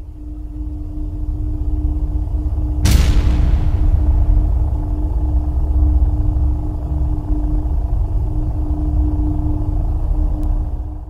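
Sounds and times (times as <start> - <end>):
deep rumbling drone: 0.0 - 11.0
steady hum tone: 0.0 - 11.0.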